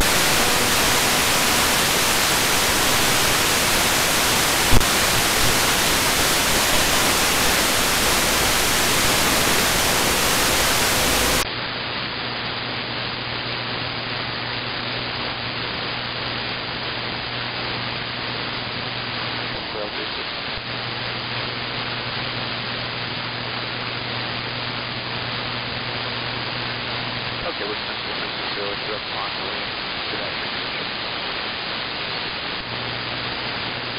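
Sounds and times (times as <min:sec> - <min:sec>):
radio receiver static hiss: 0:00.0 - 0:33.9.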